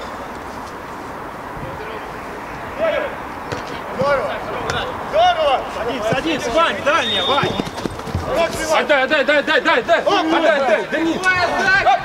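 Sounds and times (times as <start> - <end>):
players shouting short calls: 2.7 - 12.0.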